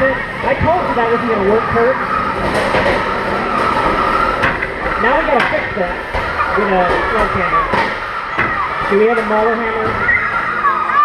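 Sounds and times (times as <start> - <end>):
electric motors whining: 0.0 - 11.0.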